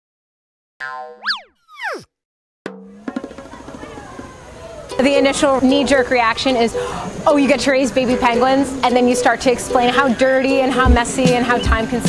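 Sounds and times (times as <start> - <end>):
cartoon boing: 0.8 - 2.1
falling whistle-like glide: 1.2 - 2.1.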